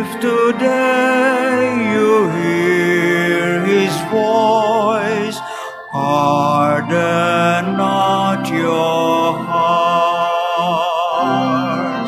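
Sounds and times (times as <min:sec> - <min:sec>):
organ accompaniment: 0:00.0 - 0:12.0
person singing a psalm: 0:00.0 - 0:12.0.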